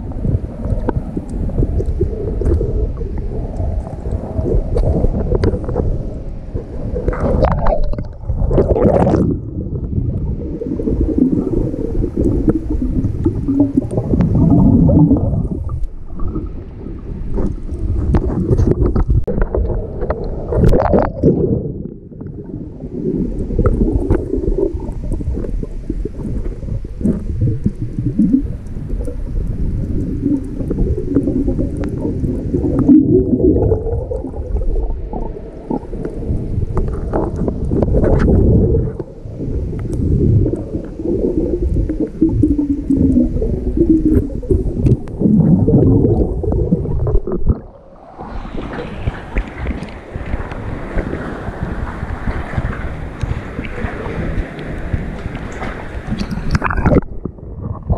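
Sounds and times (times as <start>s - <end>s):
bubbles gurgling underwater: 0.0s - 57.9s.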